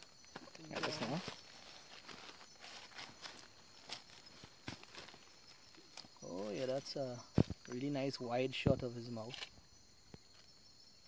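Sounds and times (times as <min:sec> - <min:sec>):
night insects chorus: 0:00.0 - 0:11.0
dry leaves rustling: 0:00.3 - 0:06.9.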